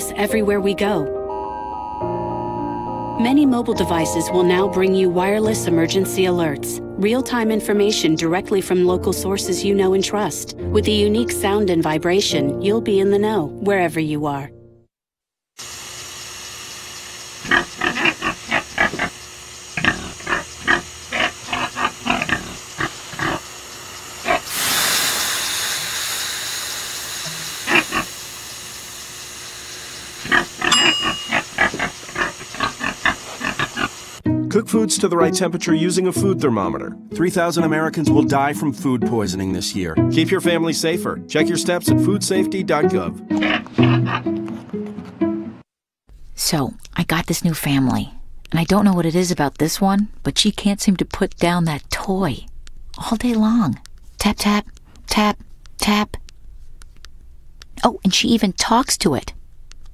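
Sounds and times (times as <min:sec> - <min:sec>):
pig grunting: 0:17.4 - 0:19.2, 0:19.8 - 0:23.5, 0:27.6 - 0:28.1, 0:30.2 - 0:34.0, 0:43.3 - 0:44.4
long hiss of steam: 0:24.4 - 0:30.2.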